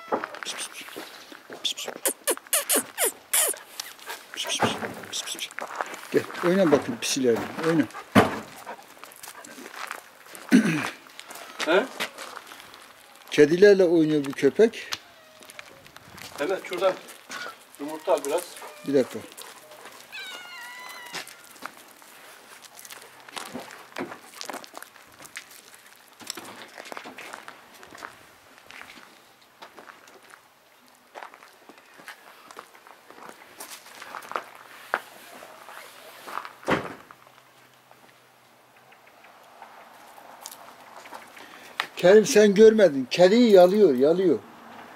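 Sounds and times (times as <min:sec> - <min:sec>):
short high-pitched cry: 0:01.6 - 0:05.6, 0:20.1 - 0:21.6
paws rustling on gravel: 0:03.6 - 0:38.2, 0:39.9 - 0:42.7
loud thump: 0:08.1 - 0:08.5, 0:36.7 - 0:37.1.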